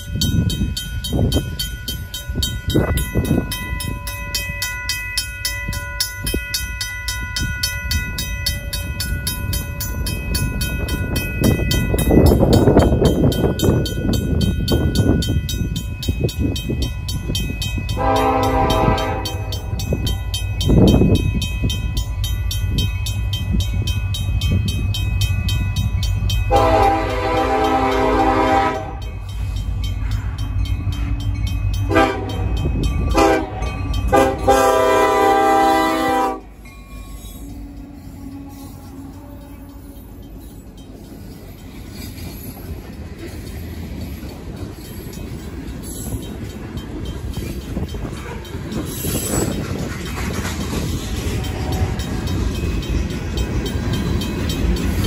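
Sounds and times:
crossing bell ringing rapidly: 0.0s - 55.0s
locomotive air horn blasts: 18.0s - 19.7s, 26.5s - 29.1s, 31.9s - 36.5s, 51.4s - 52.1s.

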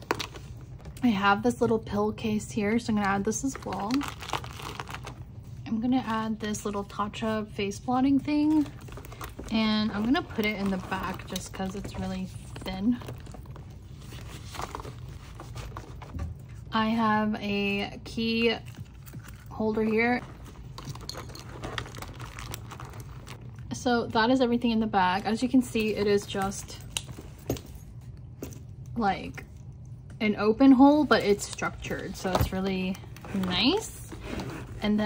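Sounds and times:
low steady hum: 0.0s - 35.0s
handbag handling noise: 8.0s - 16.6s, 18.4s - 23.5s, 31.3s - 35.0s.

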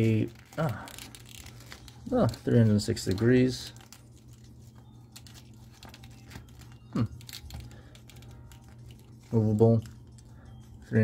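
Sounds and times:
plastic toy clicks and rustles: 0.0s - 4.0s, 5.1s - 10.0s.

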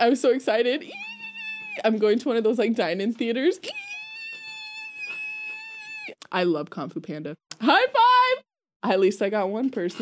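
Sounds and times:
woman squealing: 0.8s - 2.0s, 3.6s - 6.2s.

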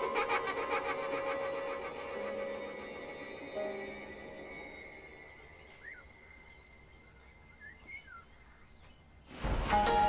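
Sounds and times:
pulsing insect chirr: 0.0s - 8.6s
bird chirps: 5.4s - 9.2s.

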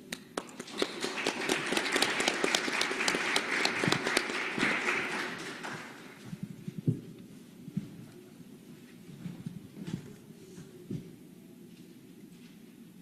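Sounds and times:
audience applauding: 0.1s - 6.3s.

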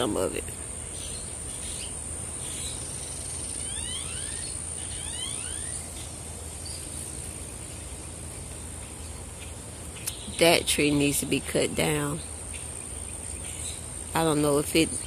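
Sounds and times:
bird chirping: 0.0s - 15.0s
low background rumble: 0.0s - 15.0s
insect trilling: 0.8s - 6.9s.

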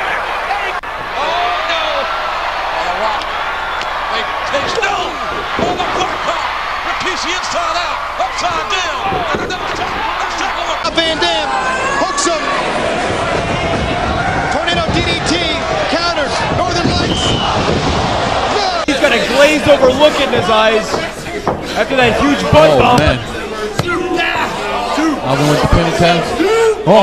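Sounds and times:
crowd yelling and cheering: 0.0s - 27.0s.

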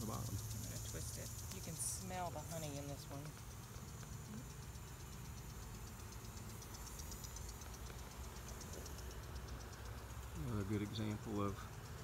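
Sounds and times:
faint rapid high ticking: 0.0s - 12.0s
honey bees humming: 0.0s - 12.0s.

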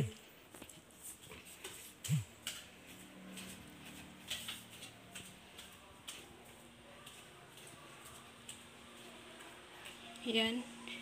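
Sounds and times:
footsteps down indoor stairs: 0.1s - 10.5s.

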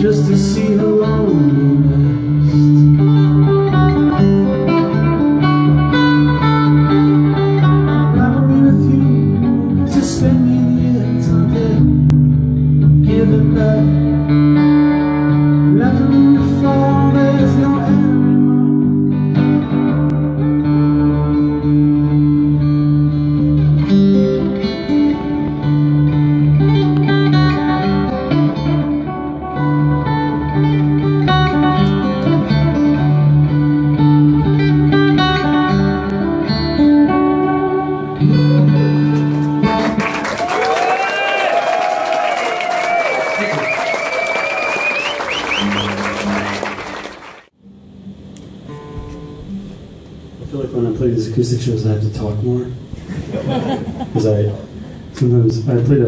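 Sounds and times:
fingerpicked acoustic guitar: 0.0s - 40.2s.

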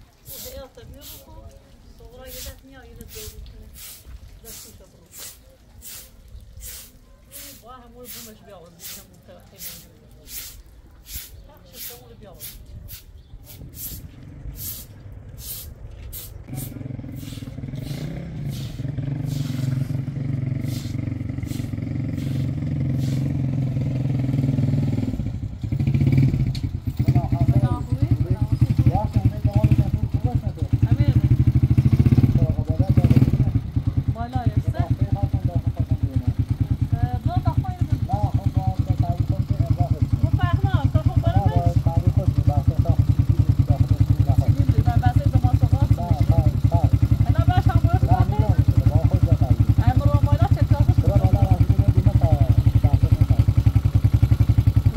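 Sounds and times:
voices talking: 0.0s - 18.6s, 26.9s - 54.8s
small motorcycle engine idling: 16.5s - 54.9s.

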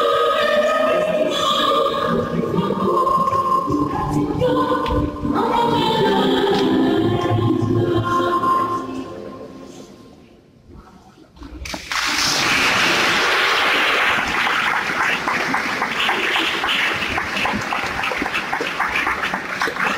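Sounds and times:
audience applause: 11.8s - 19.9s.

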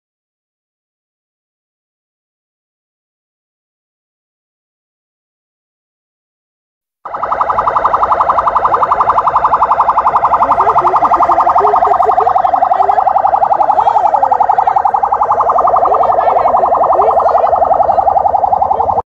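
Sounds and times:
warbling electronic siren: 7.0s - 19.0s.

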